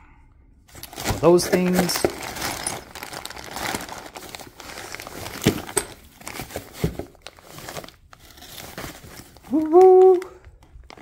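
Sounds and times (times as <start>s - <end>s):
plastic bags and paper crinkling: 0.7s - 11.0s.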